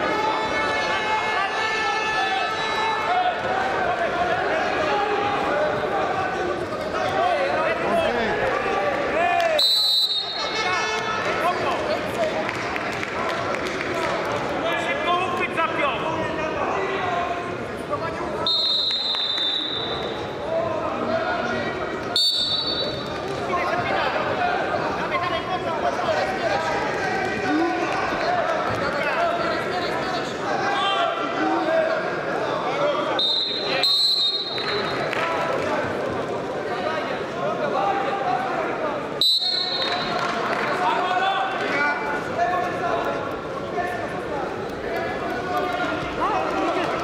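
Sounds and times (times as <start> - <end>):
voices calling out in a hall: 0.0 - 47.0
referee's whistle blast: 9.6 - 10.8, 18.4 - 20.2, 22.2 - 23.1, 33.2 - 35.0, 39.2 - 40.2.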